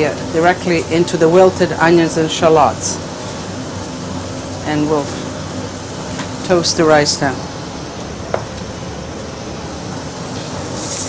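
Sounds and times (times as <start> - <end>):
rice sizzling in hot oil: 0.0 - 11.0.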